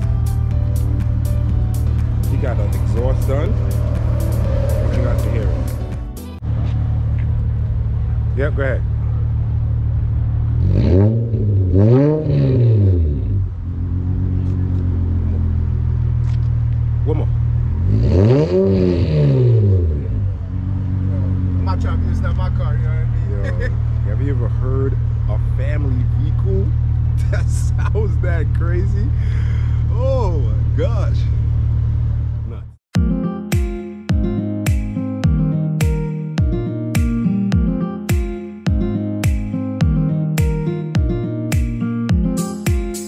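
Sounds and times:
car engine idling and revving: 0.0 - 32.8.

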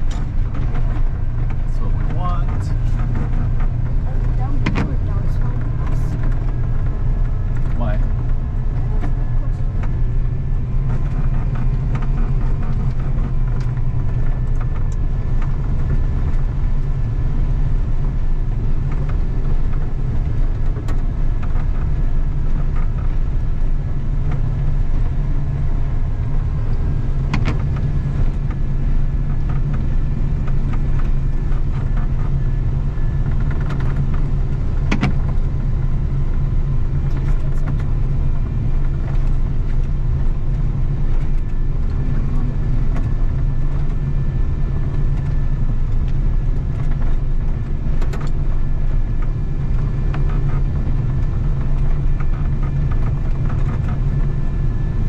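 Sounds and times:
diesel engine running steadily: 0.0 - 55.0.

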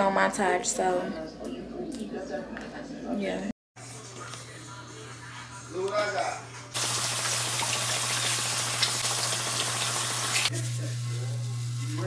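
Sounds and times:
faucet water running into metal sink: 6.8 - 10.5.

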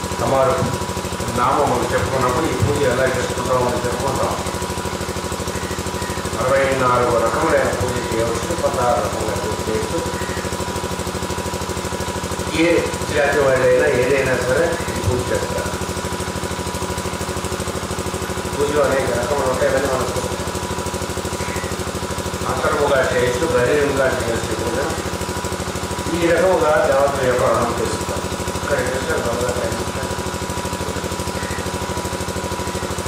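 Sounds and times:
electrical hum and buzz: 0.0 - 33.0.

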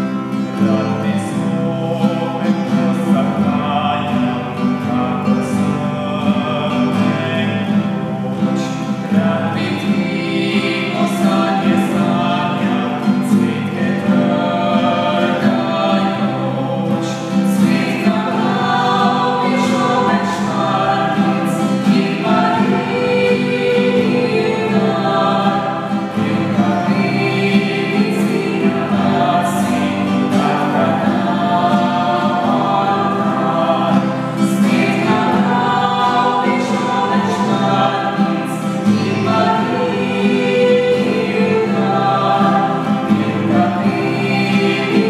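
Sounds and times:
acoustic guitar: 0.0 - 45.0
voices singing in unison: 0.0 - 45.0.

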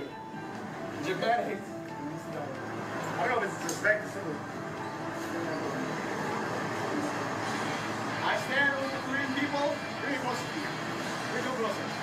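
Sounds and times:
rushing street ambience: 0.0 - 12.0.

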